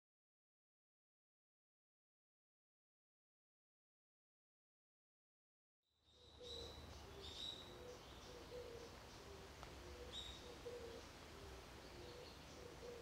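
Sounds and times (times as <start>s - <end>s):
birds chirping: 6.1s - 13.0s
low bird call: 6.2s - 13.0s.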